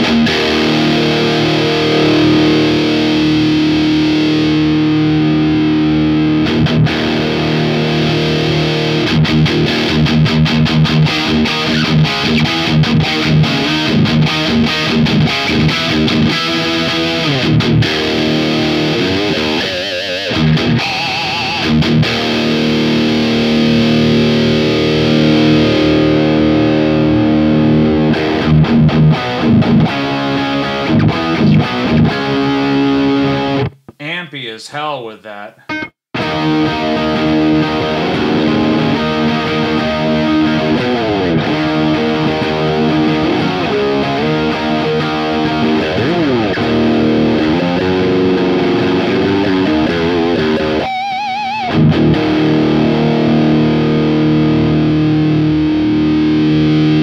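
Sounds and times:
distorted electric guitar: 0:00.0 - 0:34.1, 0:35.2 - 0:57.0.

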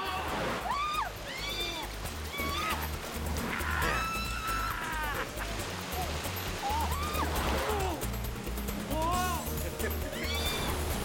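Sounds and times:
people whooping and shrieking: 0:00.0 - 0:05.4, 0:06.6 - 0:08.0, 0:10.0 - 0:10.9
background music with pulsing bass: 0:00.0 - 0:11.0.

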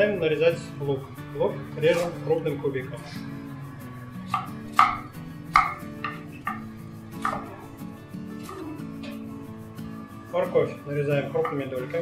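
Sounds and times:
background music: 0:00.0 - 0:12.0
knife chopping onion on wood: 0:04.3 - 0:07.6.

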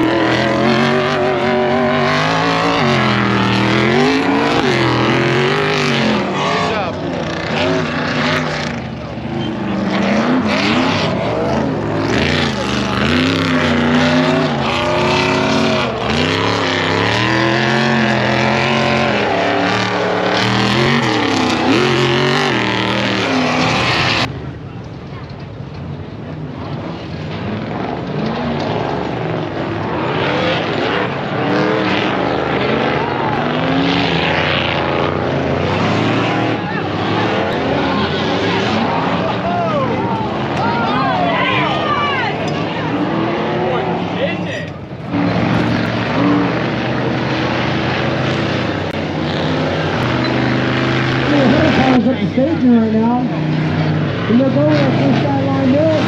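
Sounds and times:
race car engines revving: 0:00.0 - 0:56.0.

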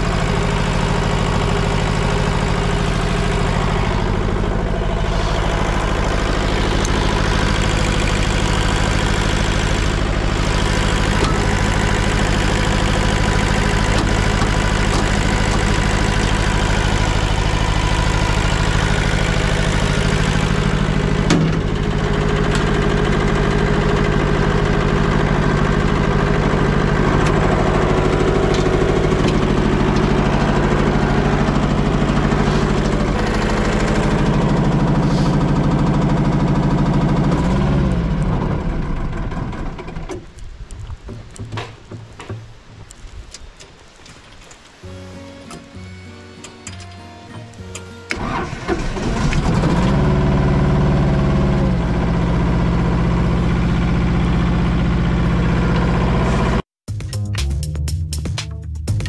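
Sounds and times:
diesel engine running: 0:00.0 - 0:42.0, 0:44.6 - 0:56.7.

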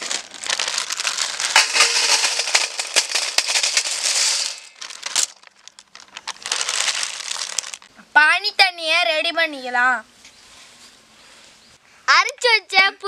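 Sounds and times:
plastic packet crinkling: 0:00.0 - 0:07.9
hard pieces clattering into metal bowl: 0:01.0 - 0:05.4.

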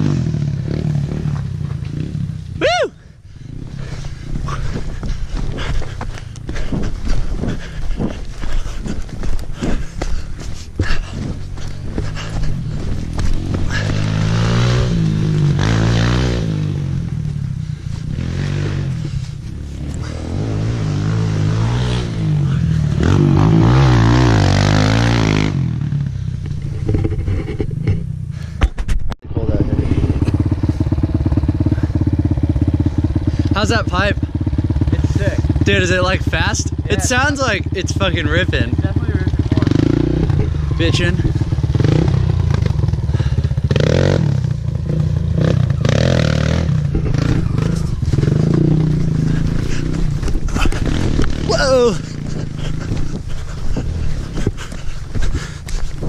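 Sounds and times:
dirt bike engine revving: 0:00.0 - 0:28.1, 0:29.4 - 0:55.7.

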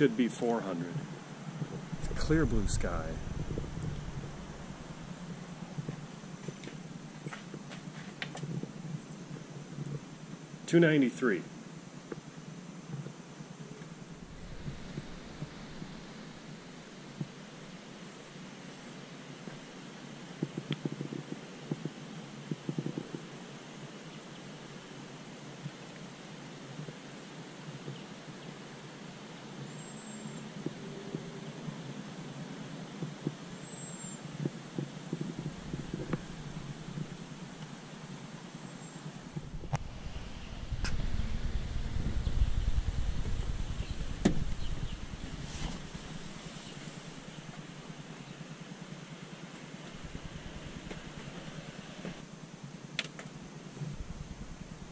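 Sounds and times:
outdoor background hiss: 0:00.0 - 0:54.9
low rumble: 0:01.6 - 0:07.1, 0:13.9 - 0:17.8, 0:35.2 - 0:37.6, 0:39.3 - 0:47.9, 0:49.9 - 0:51.8.

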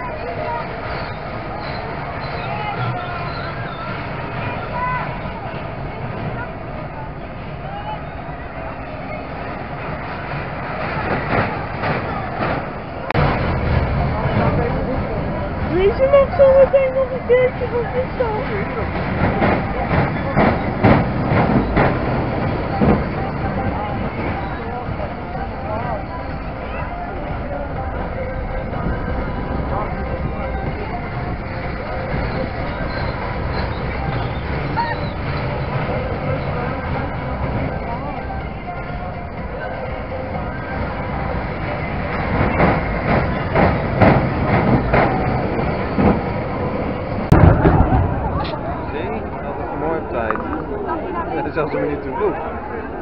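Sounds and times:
roller coaster cars rattling on track: 0:00.0 - 0:53.0
background voices: 0:11.5 - 0:53.0.

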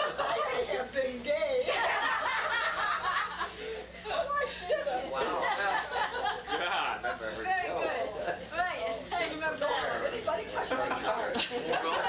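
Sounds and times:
people laughing: 0:00.0 - 0:00.9, 0:01.6 - 0:07.3, 0:10.3 - 0:12.0.

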